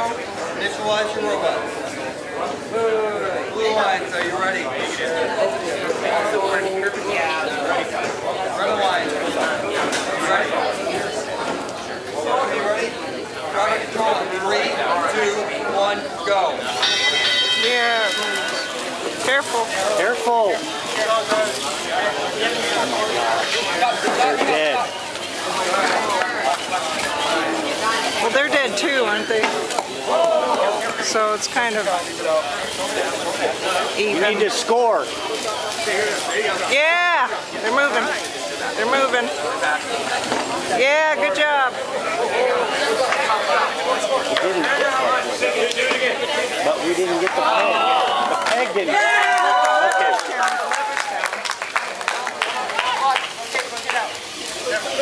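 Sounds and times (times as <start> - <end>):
hall background noise: 0.0 - 55.0
indistinct talking: 0.0 - 55.0.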